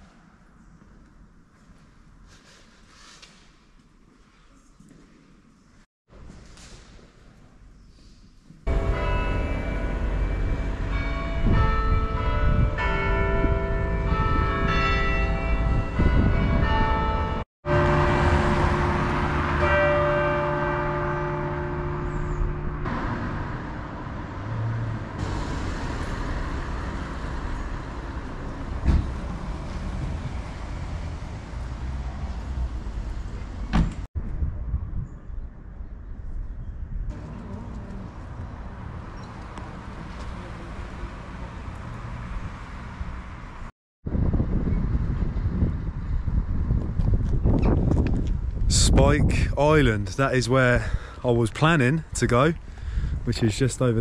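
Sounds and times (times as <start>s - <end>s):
passing traffic: 8.6s - 34.9s, 37.1s - 54.0s.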